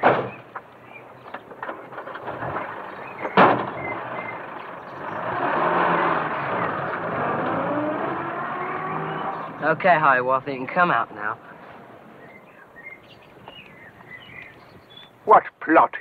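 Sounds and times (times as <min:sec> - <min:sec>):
car engine revving: 0:01.8 - 0:12.5.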